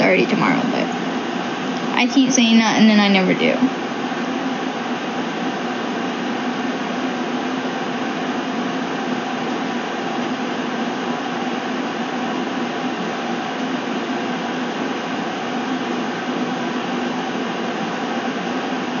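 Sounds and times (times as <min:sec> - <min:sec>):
machine whooshing hum: 0:00.0 - 0:19.0.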